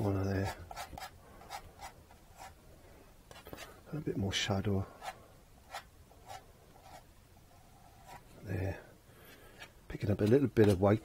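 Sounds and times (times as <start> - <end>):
palette knife scraping canvas: 10.0 - 11.0.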